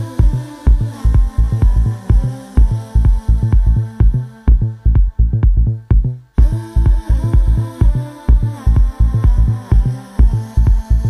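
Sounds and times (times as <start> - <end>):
deep tech house music: 0.0 - 11.0
heavy kick drum: 0.0 - 11.0.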